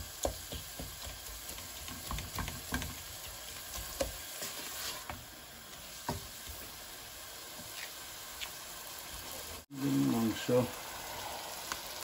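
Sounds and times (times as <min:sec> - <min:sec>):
onions sizzling in a pot: 0:00.0 - 0:12.0
wooden spoon scraping a pot: 0:00.6 - 0:05.2.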